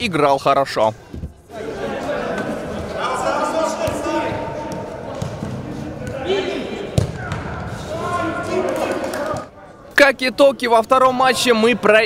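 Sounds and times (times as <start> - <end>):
players calling out in echoing hall: 1.4 - 12.0
ball being kicked: 7.0 - 7.5.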